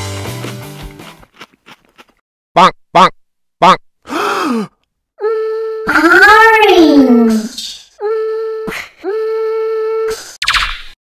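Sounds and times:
held vocal hum: 4.1 - 10.4
cartoon voice groan: 5.2 - 8.2.

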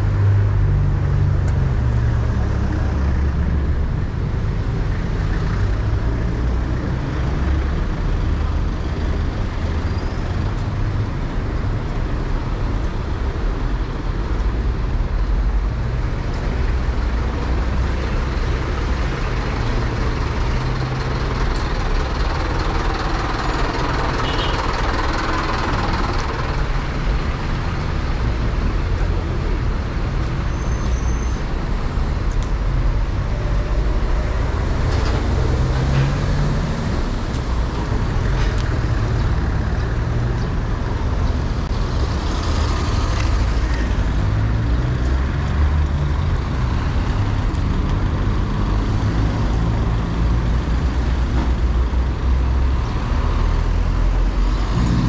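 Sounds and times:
car and truck engines rumbling: 0.0 - 55.0
vehicles driving past: 0.0 - 55.0.

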